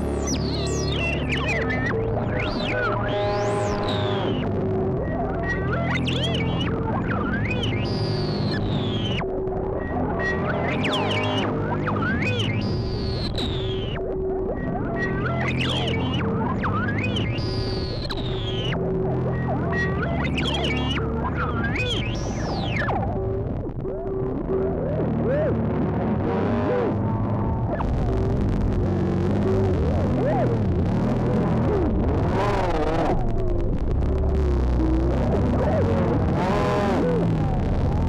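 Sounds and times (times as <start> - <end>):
low synthesizer drone: 0.0 - 38.0.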